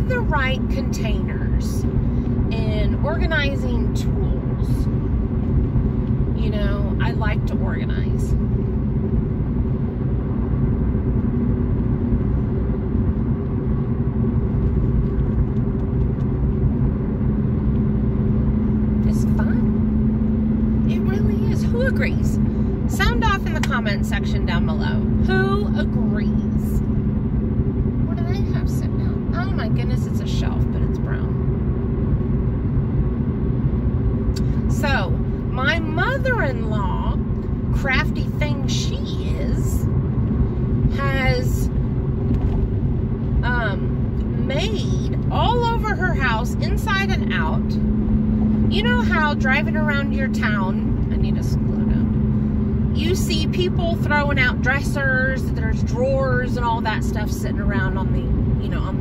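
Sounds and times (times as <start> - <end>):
car cabin road and engine drone: 0.0 - 59.0.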